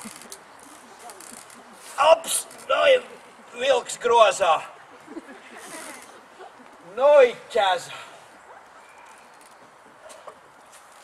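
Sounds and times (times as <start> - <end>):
wicker basket creaking: 0.0 - 2.8, 5.6 - 6.2, 9.0 - 9.8.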